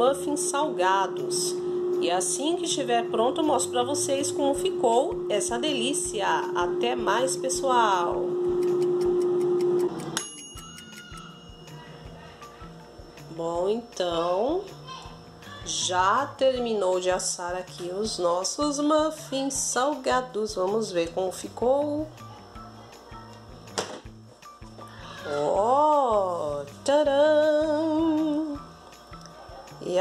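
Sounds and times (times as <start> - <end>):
steady low tone: 0.0 - 10.1
soft background music: 0.0 - 30.0
bright bell ding: 10.2 - 11.9.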